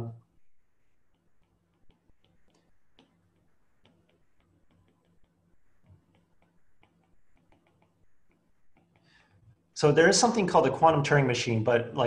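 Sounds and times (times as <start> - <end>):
stylus tapping on glass screen: 1.0 - 9.7.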